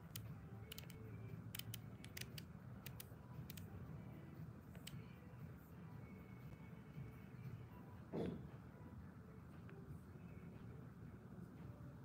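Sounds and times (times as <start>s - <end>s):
small sharp clicks: 0.0s - 3.7s.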